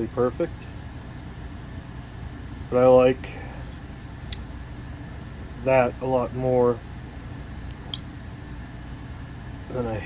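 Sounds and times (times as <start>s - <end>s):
low steady hum: 0.0s - 10.0s
pocket knife click: 7.7s - 8.1s.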